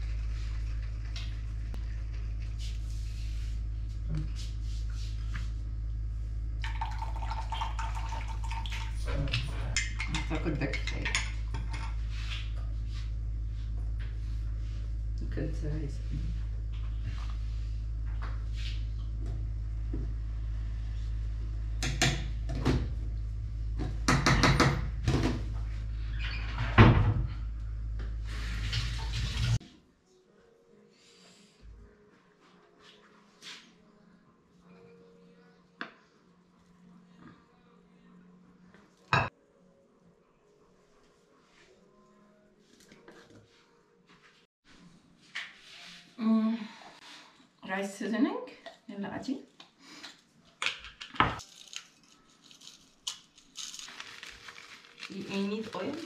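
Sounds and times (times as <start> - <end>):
steady low hum: 0.0 - 24.1
pot and utensils clattering: 8.2 - 12.0.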